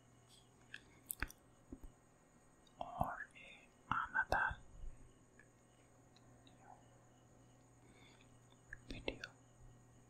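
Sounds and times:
wet mouth clicks: 0:00.7 - 0:01.4
man whispering: 0:02.8 - 0:04.7, 0:08.8 - 0:09.4.

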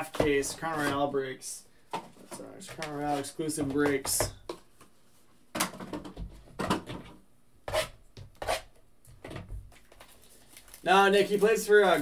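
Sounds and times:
cardboard and wrapper rustling: 0:09.7 - 0:12.0.

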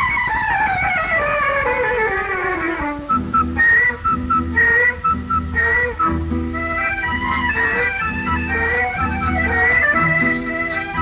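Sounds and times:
high instrumental melody: 0:00.0 - 0:11.0
steady bass line: 0:03.2 - 0:11.0.

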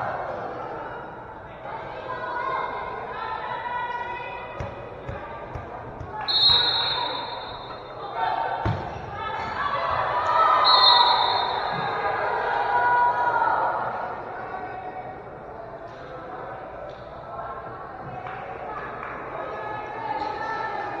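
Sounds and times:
players and spectators shouting: 0:06.1 - 0:14.7
volleyball struck with sharp thuds: 0:08.6 - 0:09.1.

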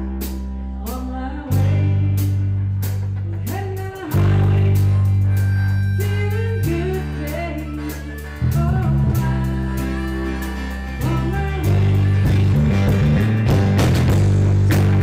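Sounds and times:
electric bass long notes: 0:00.0 - 0:15.0
drum kit cymbals: 0:02.8 - 0:15.0
electric guitar sliding melody: 0:04.1 - 0:15.0.

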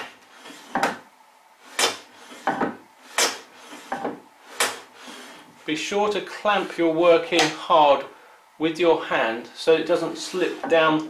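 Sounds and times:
hand plane swishing on wood: 0:00.0 - 0:00.9, 0:01.6 - 0:05.6, 0:06.4 - 0:07.0, 0:10.0 - 0:10.9.

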